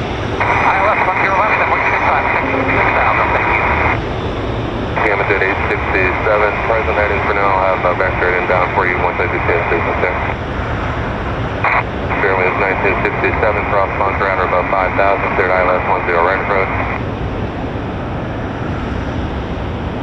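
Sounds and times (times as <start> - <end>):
jet engines rumbling: 0.0 - 20.0
radio transmissions: 0.4 - 4.0, 5.0 - 10.4, 11.6 - 17.1.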